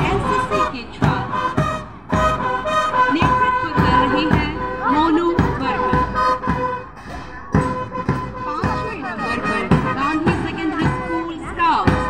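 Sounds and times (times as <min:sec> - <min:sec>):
drum beat: 0:00.0 - 0:12.0.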